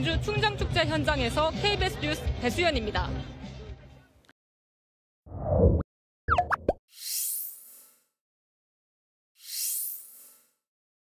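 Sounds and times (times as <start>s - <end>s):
gliding pitched blips: 5.4s - 6.8s.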